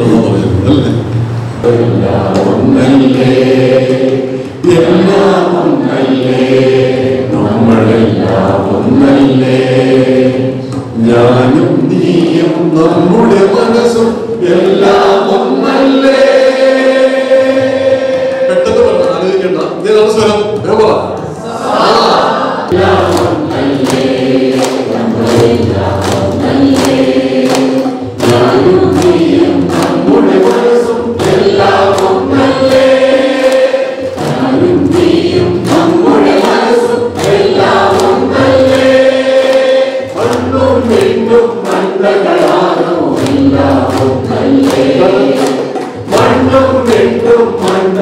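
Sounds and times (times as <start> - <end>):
crowd singing: 0.0 - 19.8, 21.2 - 48.0
rhythmic hand clapping: 0.0 - 48.0.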